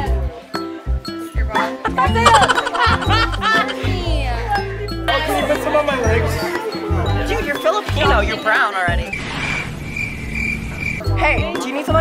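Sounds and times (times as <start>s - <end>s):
crickets chirping: 9.1s - 11.2s.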